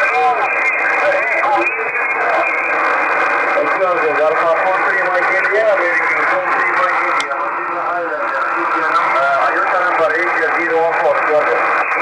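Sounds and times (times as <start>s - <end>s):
indistinct radio speech: 0.0s - 12.0s
steady radio hiss: 0.0s - 12.0s.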